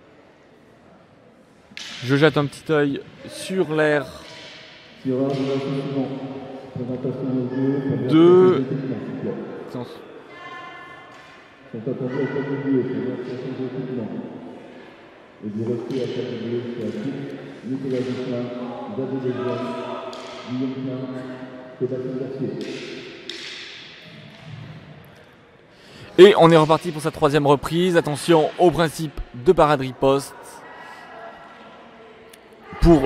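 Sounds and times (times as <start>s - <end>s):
indistinct voices in a hall: 0.0s - 33.0s.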